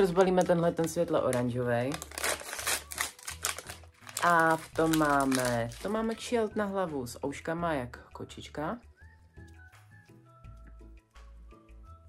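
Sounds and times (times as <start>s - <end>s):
packet tearing and crinkling: 0.0s - 6.3s.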